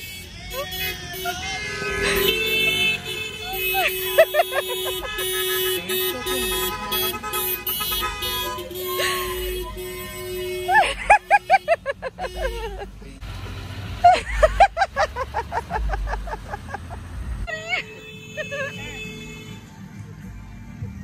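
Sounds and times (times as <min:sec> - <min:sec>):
car horns honking: 0:00.0 - 0:19.8.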